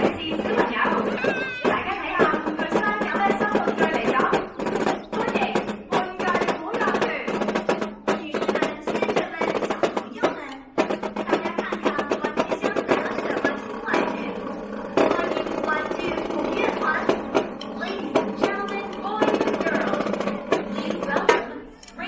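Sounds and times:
marching snare drums with rolls: 0.0 - 21.7.

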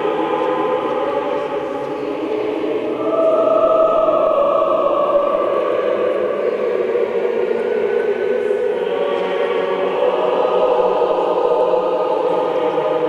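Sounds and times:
choir singing chant: 0.0 - 13.0.

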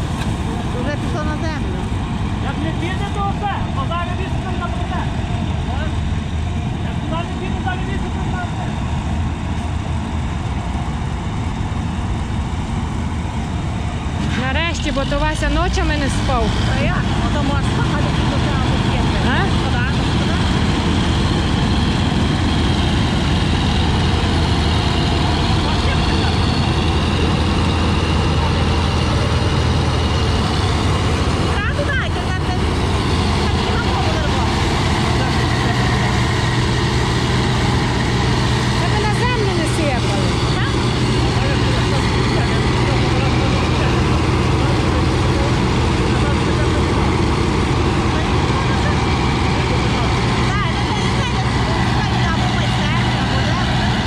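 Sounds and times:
combine harvester engine running: 0.0 - 54.0.

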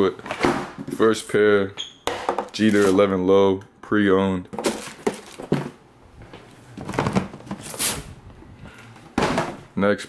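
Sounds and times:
cardboard rustling and scraping: 4.6 - 5.8, 6.4 - 8.2.

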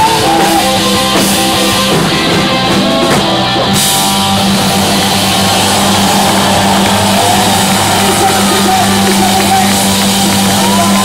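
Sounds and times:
live punk rock band: 0.0 - 11.0.

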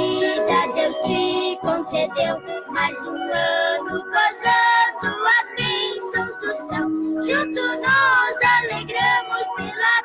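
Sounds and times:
person singing: 0.0 - 10.0.

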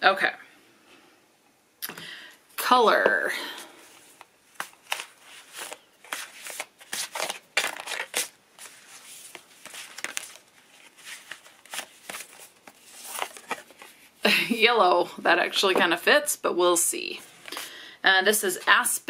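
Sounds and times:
cards being shuffled: 4.0 - 14.1.

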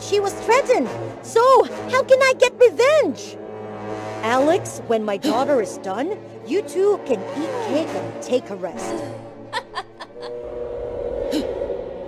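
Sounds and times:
sustained low notes: 0.0 - 12.0
low rumble: 9.1 - 12.0.

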